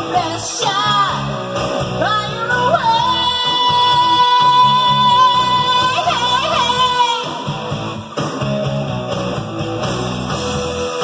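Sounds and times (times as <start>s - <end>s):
woman singing a rock song: 0.0s - 7.6s
backing track with guitar: 0.0s - 11.0s.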